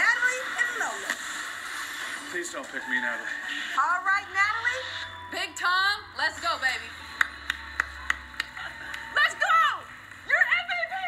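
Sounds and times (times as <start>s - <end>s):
sharp hand claps: 7.2s - 9.1s.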